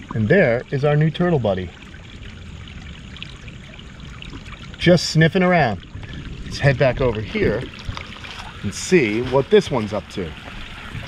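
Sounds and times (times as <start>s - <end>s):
water running over small waterfalls: 0.0s - 11.0s.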